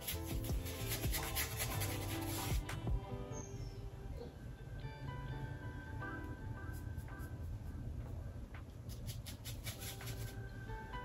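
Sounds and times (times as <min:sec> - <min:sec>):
paintbrush scratching on canvas: 0:00.0 - 0:02.7
quiet background music: 0:00.0 - 0:11.0.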